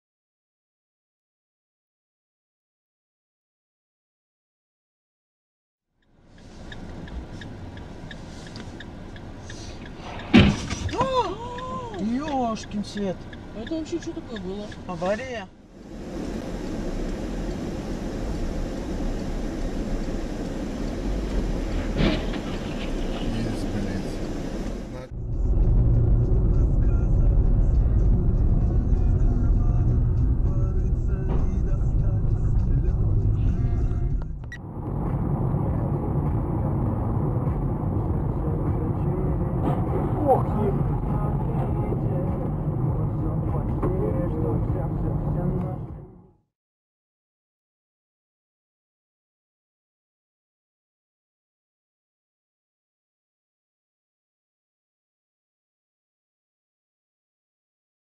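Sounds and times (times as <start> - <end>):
car cabin road and engine noise: 6.0 - 46.4.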